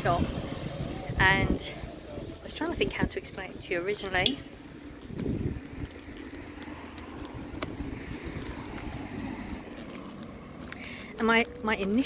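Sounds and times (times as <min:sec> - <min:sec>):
road traffic hum: 0:00.0 - 0:12.0
wind buffeting microphone: 0:00.0 - 0:12.0.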